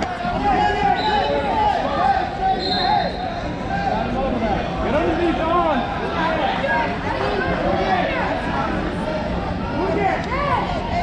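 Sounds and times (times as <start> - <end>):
babble of many voices: 0.0 - 11.0.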